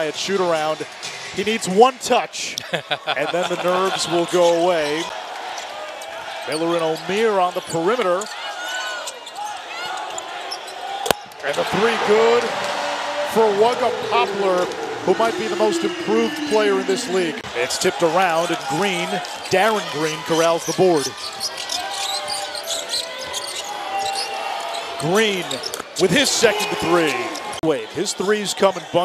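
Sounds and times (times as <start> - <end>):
sneakers squeaking on court: 6.3 - 11.5, 20.4 - 25.0
crowd hum: 9.1 - 27.7
sneakers squeaking on hardwood: 21.1 - 24.9.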